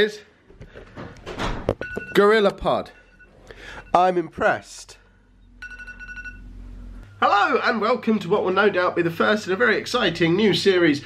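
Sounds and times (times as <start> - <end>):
low steady hum: 1.8 - 11.0
high alarm beep: 2.9 - 4.2, 5.4 - 6.5.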